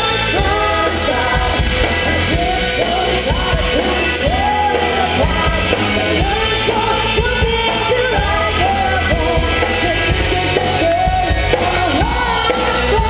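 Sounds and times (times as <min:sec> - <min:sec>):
amplified band music with singing: 0:00.0 - 0:13.0.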